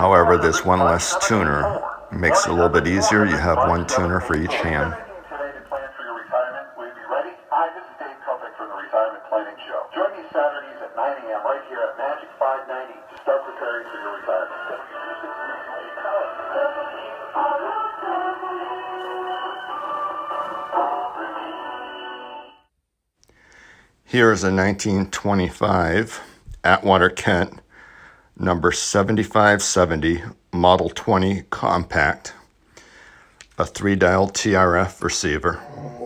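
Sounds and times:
thin radio music with voice: 0.0s - 22.5s, 34.5s - 36.0s.

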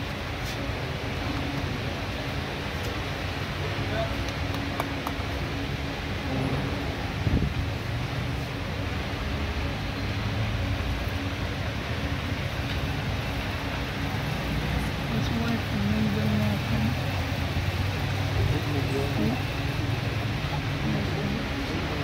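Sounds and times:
low rumble and hiss: 0.0s - 22.0s.

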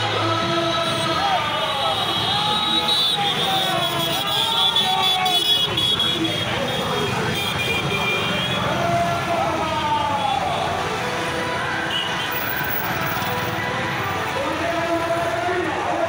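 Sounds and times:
crowd voices: 0.0s - 16.0s
vehicles passing by: 0.0s - 16.0s.

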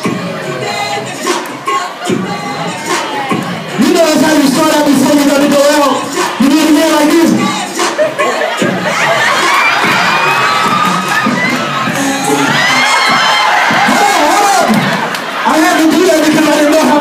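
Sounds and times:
audience cheering and laughing: 0.0s - 17.0s
high voices shouting: 0.0s - 17.0s.

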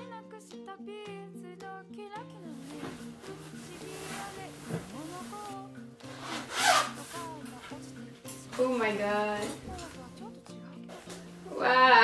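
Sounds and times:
soft background music: 0.0s - 12.0s
zipper pulled open: 6.1s - 7.4s.

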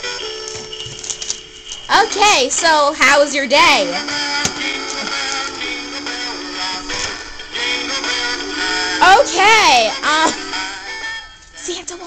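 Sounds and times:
recorded singing with music: 1.9s - 12.0s.

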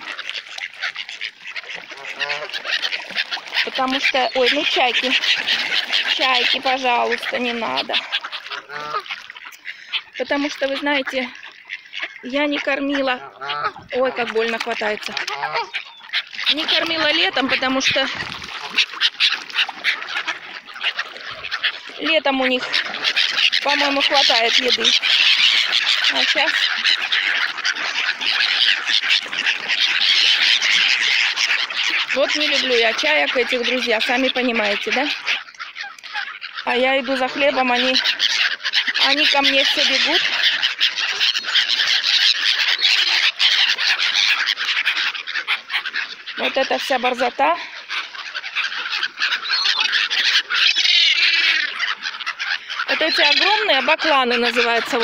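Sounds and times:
gulls' wings flapping: 0.0s - 55.0s
swans splashing on water: 0.0s - 55.0s.

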